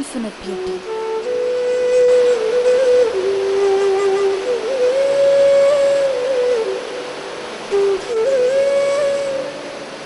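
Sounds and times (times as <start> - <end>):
solo flute melody: 0.4 - 10.0.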